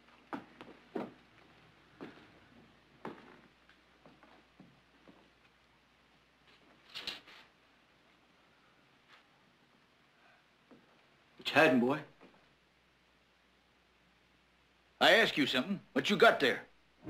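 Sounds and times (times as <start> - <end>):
knocks and scuffs: 0.3 - 1.2, 3.0 - 3.4
footsteps on wooden floor: 0.3 - 5.3.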